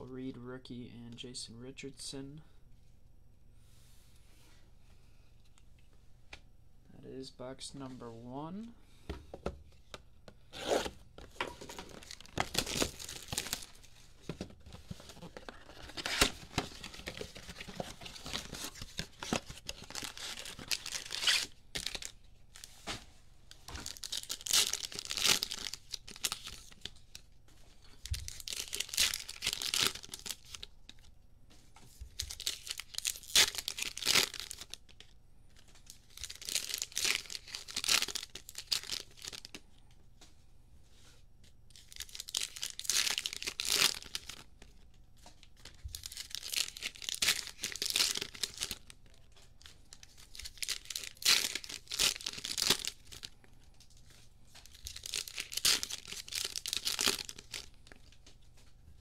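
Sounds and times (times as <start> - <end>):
foil packs tearing and crinkling: 11.6 - 13.9, 14.6 - 22.7, 23.7 - 27.0, 28.0 - 31.0, 32.2 - 34.8, 35.9 - 39.6, 41.8 - 44.8, 45.5 - 49.0, 49.6 - 53.4, 54.6 - 58.1.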